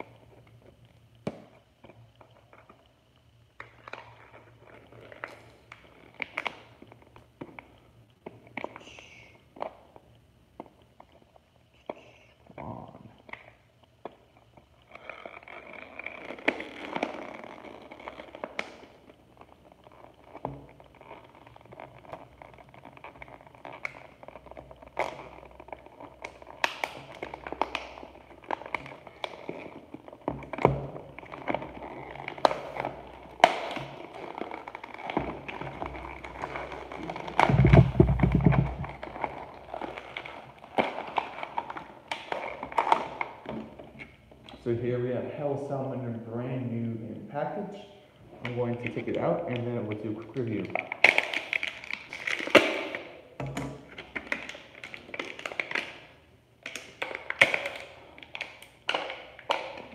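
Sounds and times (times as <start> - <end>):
plastic packaging crackling: 12.7 - 44.8, 48.4 - 59.9.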